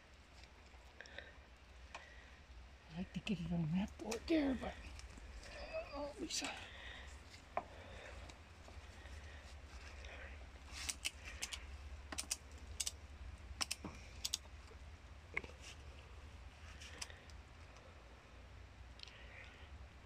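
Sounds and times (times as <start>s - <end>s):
ratchet strap clicking: 10.7s - 13.0s, 13.6s - 14.5s.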